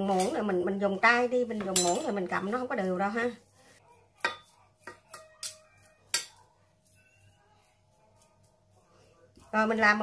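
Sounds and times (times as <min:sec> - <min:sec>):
metal spoon scraping steel bowl: 0:00.0 - 0:03.4.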